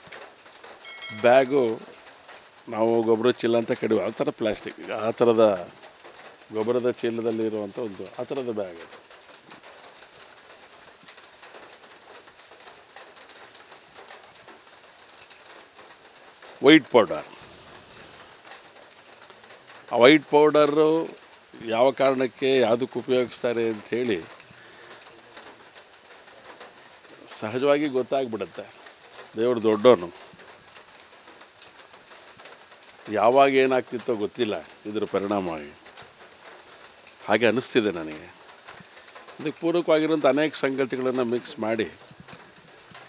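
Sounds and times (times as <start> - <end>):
faint background noise: 0.0 - 43.0
rain patter: 0.0 - 43.0.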